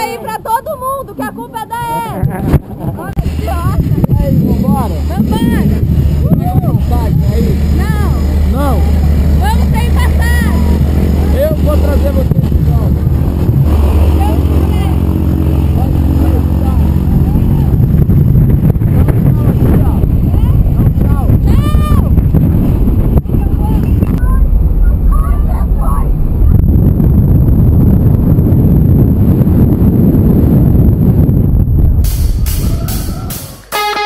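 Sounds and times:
airplane engine and propeller humming: 0.0s - 31.3s.

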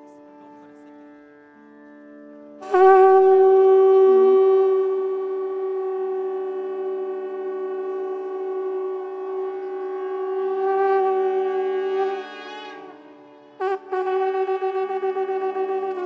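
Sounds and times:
soft steady drone: 0.0s - 16.0s
conch shells blowing: 2.6s - 16.0s.

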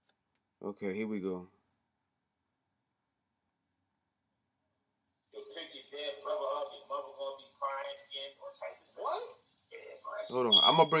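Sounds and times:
man speaking in video playback: 0.6s - 1.5s, 5.4s - 11.0s.

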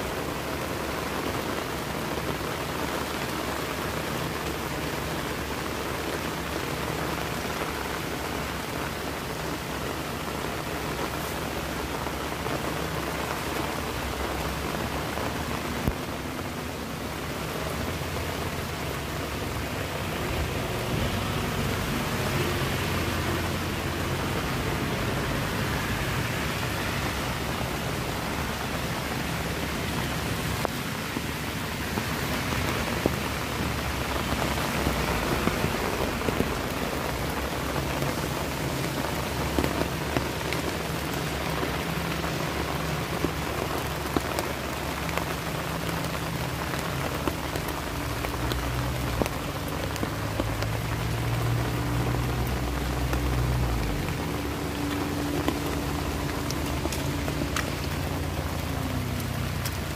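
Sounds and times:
heavy rain falling: 0.0s - 59.9s
raindrops ticking on surface: 0.0s - 59.9s.

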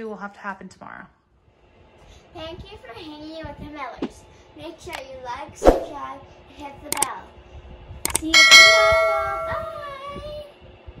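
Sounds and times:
button clicks: 8.1s - 8.3s
bright bell ding: 8.4s - 9.8s.

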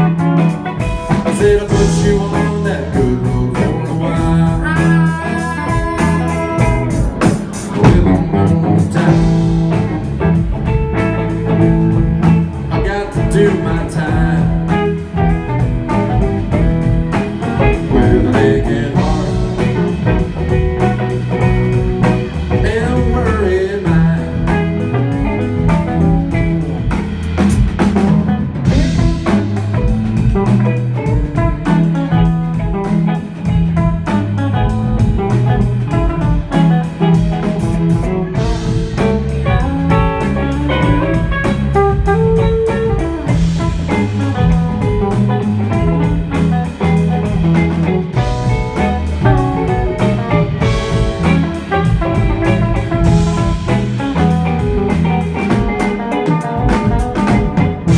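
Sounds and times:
lead guitar bent notes: 0.0s - 57.9s
live rock band playing: 0.0s - 57.9s.

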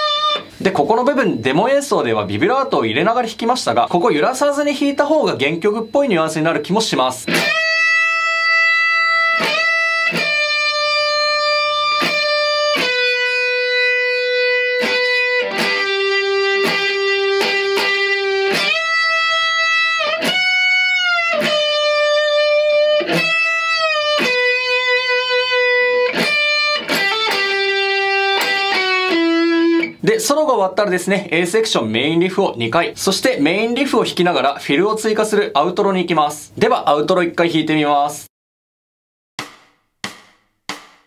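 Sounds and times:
distorted electric guitar solo: 0.0s - 0.6s, 6.6s - 30.0s
pick scratching muted strings: 9.4s - 29.9s.

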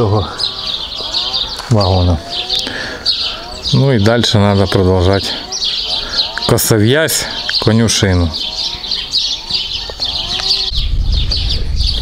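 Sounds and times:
farm animal call: 0.0s - 11.7s
small birds chirping: 0.0s - 12.0s
low rumble: 10.0s - 12.0s.

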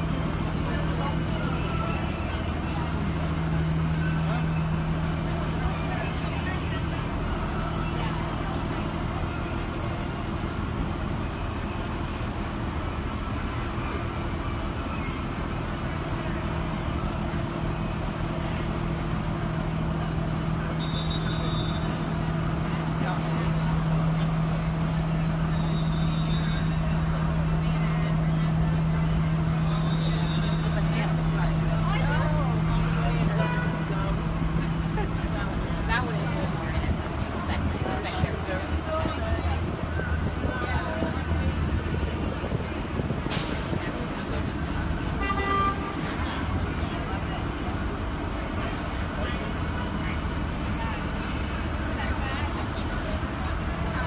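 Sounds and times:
indistinct voices: 0.0s - 54.0s
traffic: 0.0s - 54.0s.

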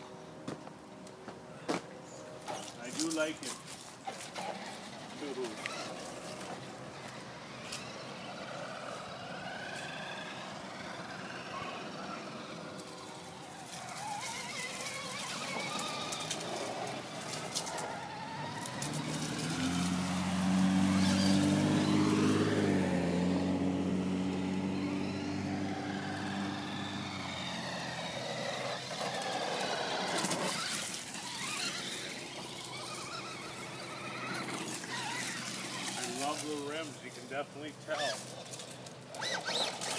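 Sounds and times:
electric motor whining: 2.5s - 37.2s, 37.8s - 39.9s
passing car engine hum: 4.0s - 39.9s.

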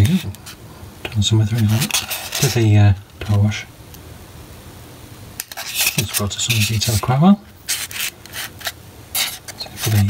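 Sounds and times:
scratchy rustle of handling: 0.0s - 0.6s, 1.2s - 3.6s, 5.4s - 10.0s
faint hiss: 0.0s - 10.0s.

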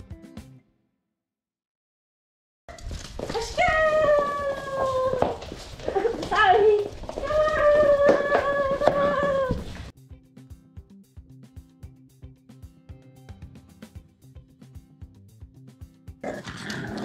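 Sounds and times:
puppies howling: 3.4s - 9.9s.

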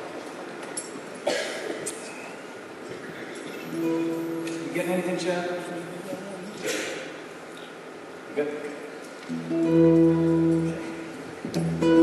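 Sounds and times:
faint hall murmur: 0.0s - 12.0s.

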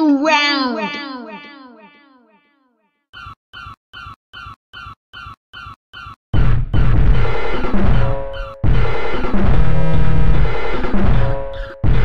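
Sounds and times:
repeating electronic sample: 3.2s - 12.0s.

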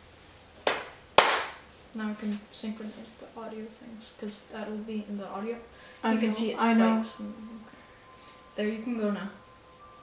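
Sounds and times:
sharp hand claps: 0.6s - 1.6s.

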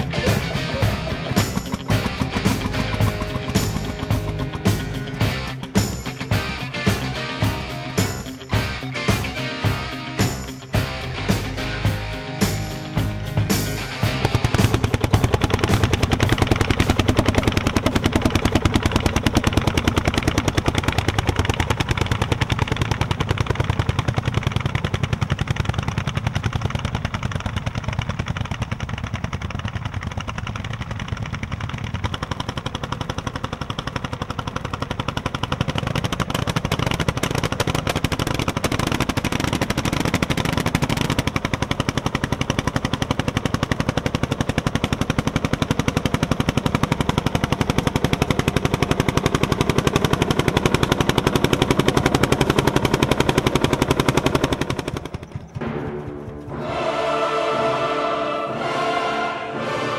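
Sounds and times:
sharp exhaust pulses: 0.0s - 59.9s
tractor engine running: 0.0s - 59.9s.

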